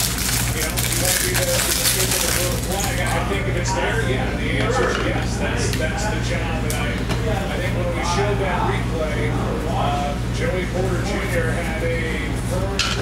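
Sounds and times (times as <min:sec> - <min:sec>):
foil wrapper crinkling: 0:00.0 - 0:03.3
background talk: 0:00.0 - 0:13.0
steady low hum: 0:00.0 - 0:13.0.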